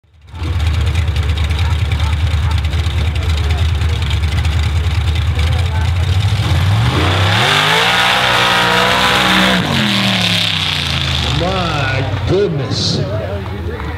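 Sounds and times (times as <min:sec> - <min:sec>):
truck engine revving: 0:00.1 - 0:13.9.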